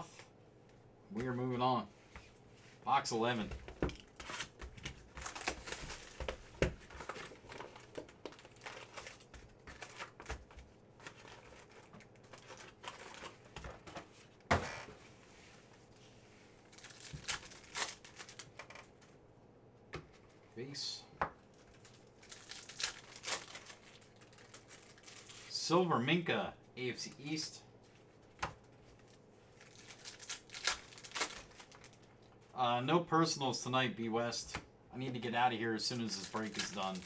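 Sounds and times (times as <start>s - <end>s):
foil packs rustling: 4.0s - 13.9s, 16.7s - 18.6s, 21.6s - 25.6s, 28.9s - 32.1s, 35.8s - 37.0s.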